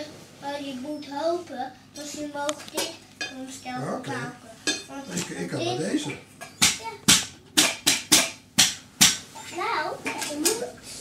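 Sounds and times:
stick hitting cooking pan: 6.6s - 9.2s.

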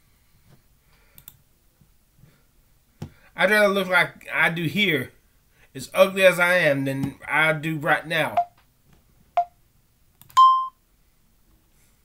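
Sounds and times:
steady electronic beep: 10.4s - 10.8s.

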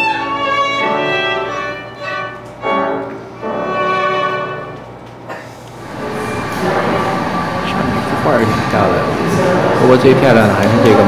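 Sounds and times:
room hum: 0.0s - 11.0s
faint indistinct voices: 5.3s - 11.0s
violin long bowed note: 5.8s - 11.0s.

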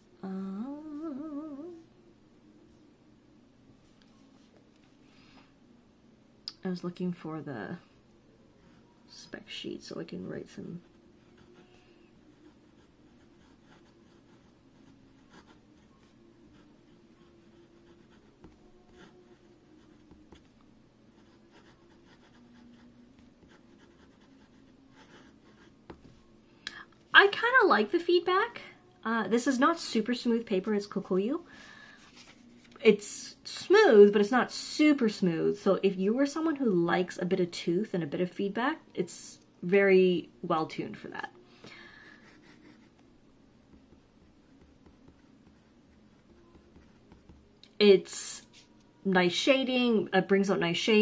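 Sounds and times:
woman humming: 0.0s - 1.9s.

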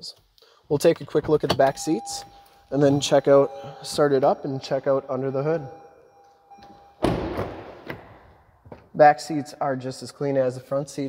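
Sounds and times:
car door thudding: 6.6s - 8.9s.

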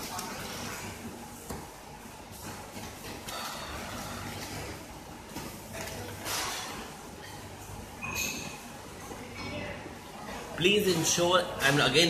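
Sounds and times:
low hum of kitchen machinery: 0.0s - 12.0s.

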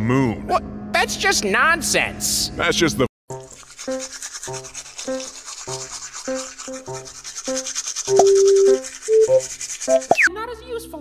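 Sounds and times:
toothbrushes scrubbing: 3.3s - 10.3s.

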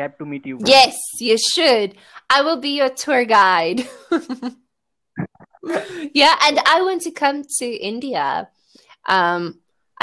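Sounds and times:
person speaking: 0.0s - 1.7s, 5.2s - 6.4s.

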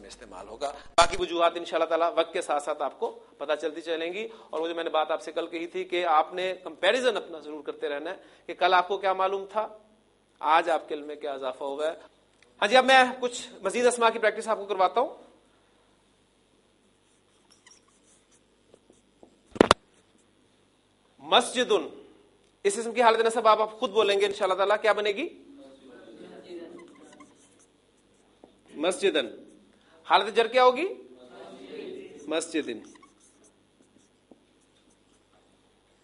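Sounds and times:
marker pen squeaking on whiteboard: 17.0s - 20.3s, 26.6s - 29.8s, 31.9s - 36.0s.

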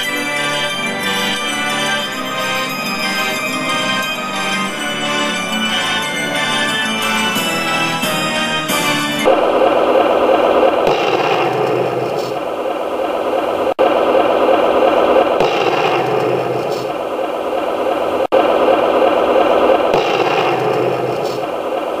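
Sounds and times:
rough noisy sound effect: 9.2s - 22.0s.

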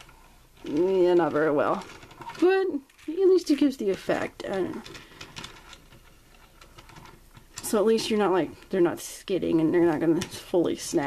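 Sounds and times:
toy roller skates clicking: 0.0s - 11.0s.

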